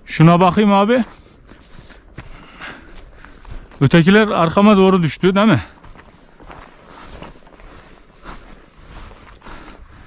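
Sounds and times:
footsteps on frozen stony ground: 0.0 - 10.0.

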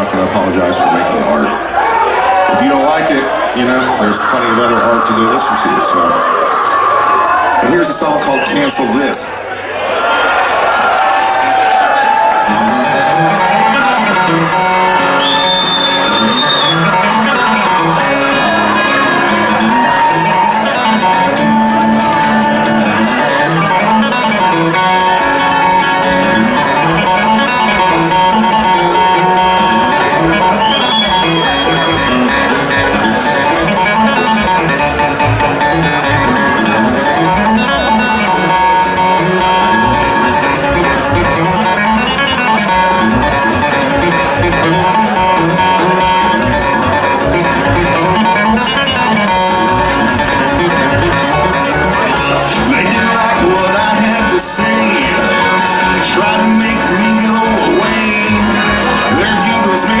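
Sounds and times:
acoustic guitar: 0.0 - 6.0, 12.0 - 60.0
upright bass line: 12.5 - 60.0
banjo: 16.8 - 60.0.

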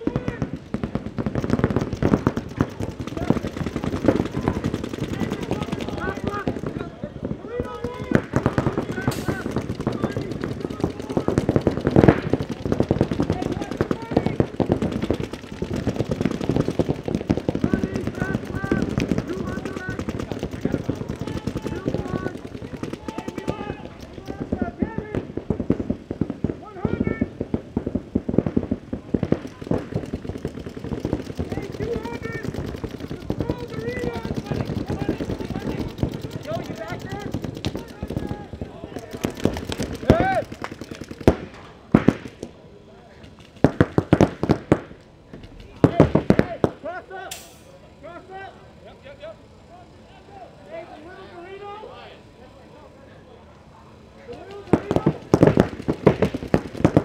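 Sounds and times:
paintball markers firing: 0.0 - 7.0, 7.6 - 42.6, 43.2 - 47.5, 54.2 - 57.0
players calling out: 0.0 - 25.4, 29.3 - 57.0.

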